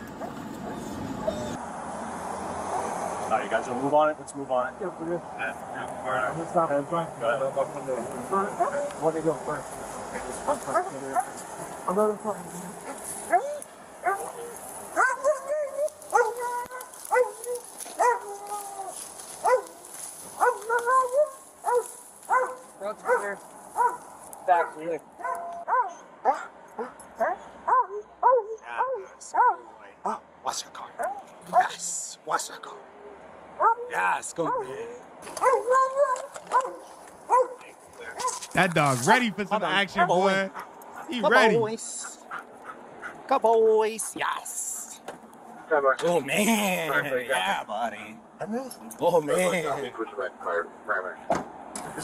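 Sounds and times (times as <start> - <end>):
dog barking and yelping: 8.5 - 9.0, 12.8 - 30.3, 31.0 - 31.8, 33.0 - 38.5, 39.9 - 41.6, 42.2 - 43.2
dog whining: 12.8 - 19.6, 20.4 - 23.2, 35.4 - 37.6.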